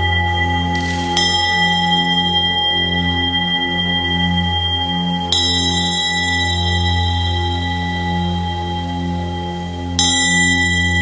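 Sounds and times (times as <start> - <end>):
singing bowls ringing: 0.0 - 11.0
singing bowl struck: 0.1 - 4.4.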